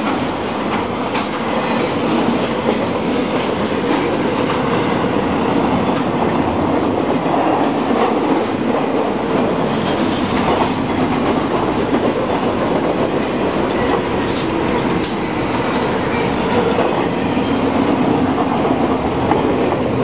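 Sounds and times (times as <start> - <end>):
steel train wheels on rails: 0.0 - 20.0.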